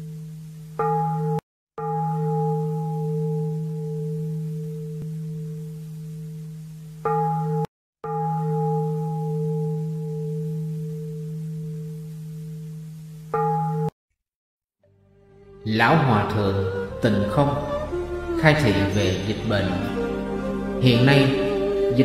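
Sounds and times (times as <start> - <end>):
deep metal bell ringing: 0.0 - 13.9, 18.8 - 20.3.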